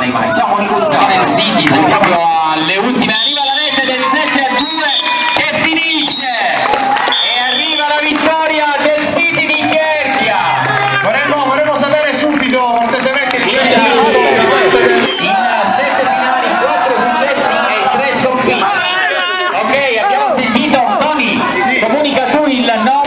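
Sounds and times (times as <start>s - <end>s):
group shouting and cheering: 0.1s - 12.0s, 12.8s - 23.0s.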